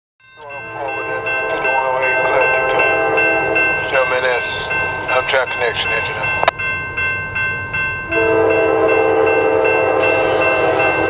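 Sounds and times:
locomotive air horn: 0.4s - 4.0s, 8.1s - 11.0s.

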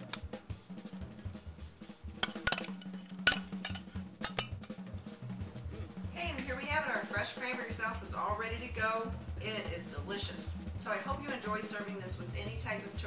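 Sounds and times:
soft background music: 0.0s - 13.0s
metal spoon clinking on dishes: 2.2s - 4.6s.

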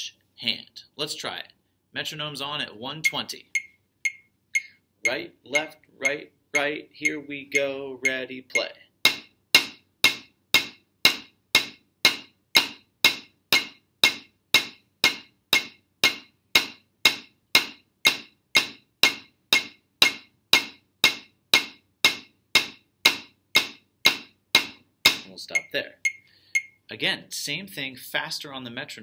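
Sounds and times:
drumsticks on practice pad: 3.0s - 26.9s
metronome clicking: 3.0s - 26.9s.

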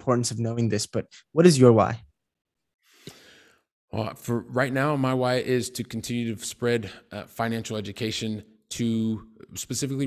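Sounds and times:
man breathing into microphone: 2.8s - 3.7s.

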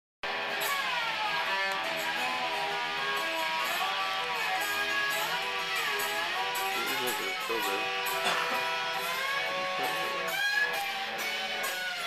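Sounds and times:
strummed guitar: 0.2s - 12.0s.

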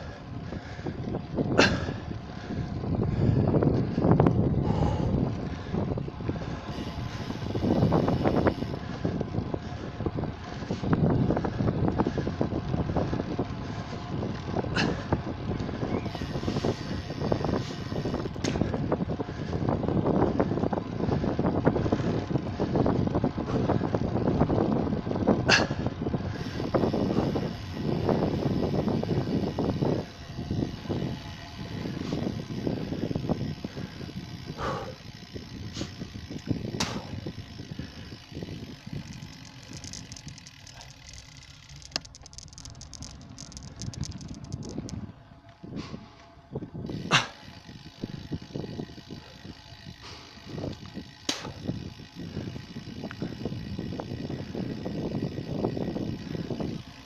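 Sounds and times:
bicycle tyres on asphalt: 0.0s - 57.0s
wind buffeting microphone: 0.0s - 57.0s
sharp clicks: 39.0s - 45.0s.

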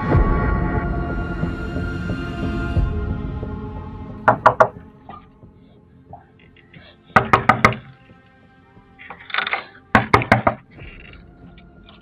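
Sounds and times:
faint background music: 0.0s - 12.0s
fist knocking on door: 4.3s - 4.8s, 7.2s - 7.8s.

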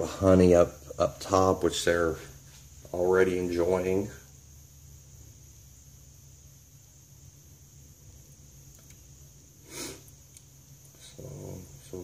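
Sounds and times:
faint high hiss: 0.0s - 12.0s.

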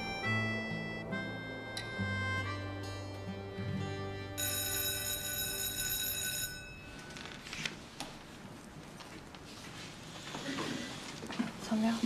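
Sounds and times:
soft background music: 0.0s - 6.0s
electric school bell ringing: 4.4s - 7.5s.

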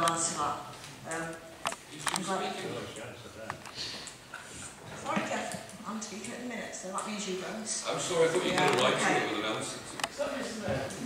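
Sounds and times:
indistinct speech in large chamber: 0.0s - 11.0s.

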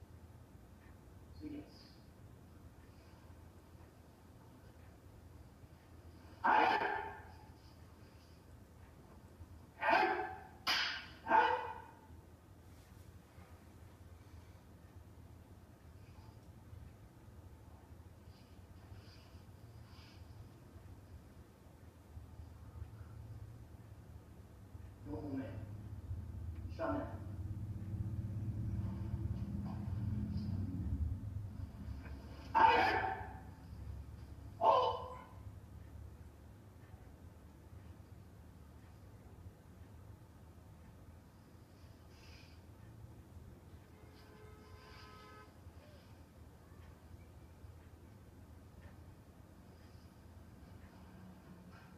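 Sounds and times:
sharp kiai shouts: 6.4s - 7.3s, 9.8s - 11.9s, 32.5s - 33.5s, 34.6s - 35.3s.

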